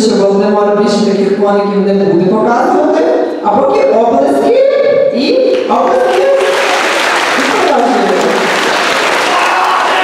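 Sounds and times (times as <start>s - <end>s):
audience clapping: 5.5s - 10.0s.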